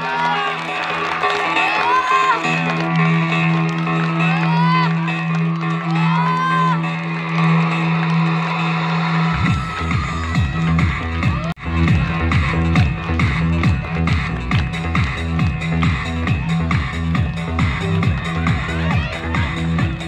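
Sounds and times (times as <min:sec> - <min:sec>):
electronic dance music: 0:00.0 - 0:20.0.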